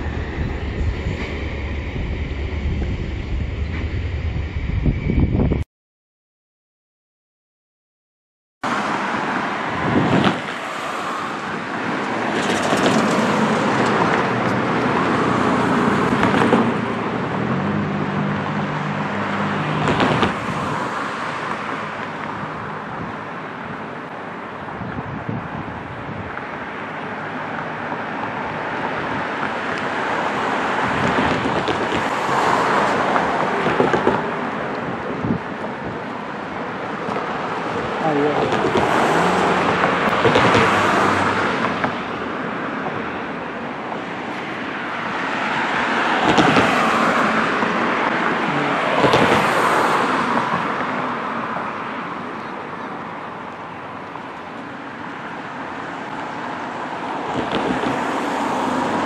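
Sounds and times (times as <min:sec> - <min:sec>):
passing road traffic: 0:00.0 - 0:05.6, 0:08.6 - 0:59.0
wind on microphone: 0:00.0 - 0:05.6, 0:09.6 - 0:10.7, 0:24.6 - 0:26.6, 0:30.4 - 0:41.9.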